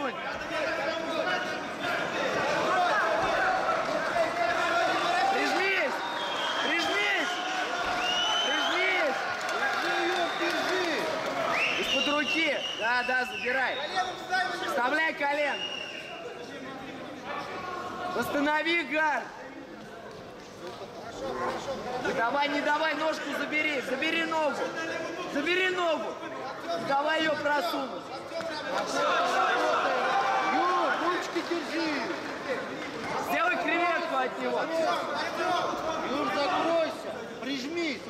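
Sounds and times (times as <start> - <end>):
crowd din: 0.0 - 6.1.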